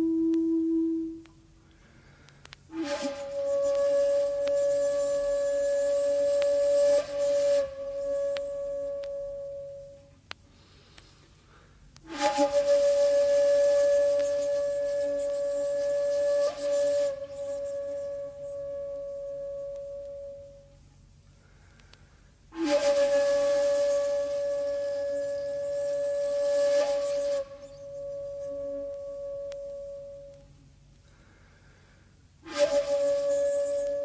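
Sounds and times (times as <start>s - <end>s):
breathy shakuhachi notes: 0.0s - 10.8s, 11.5s - 34.0s.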